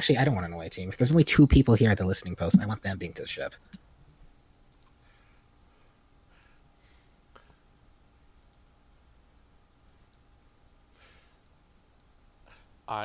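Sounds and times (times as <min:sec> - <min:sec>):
person speaking: 0:00.0 - 0:03.5
faint scattered clicks: 0:04.7 - 0:05.0, 0:08.4 - 0:08.7, 0:10.0 - 0:10.3.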